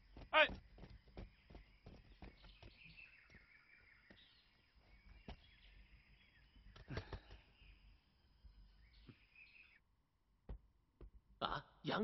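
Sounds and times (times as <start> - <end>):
bird chirps: 0.0 - 9.8.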